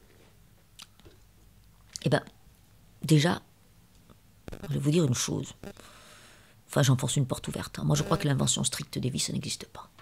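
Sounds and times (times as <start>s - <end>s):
faint mouth clicks: 0.8s - 2.1s.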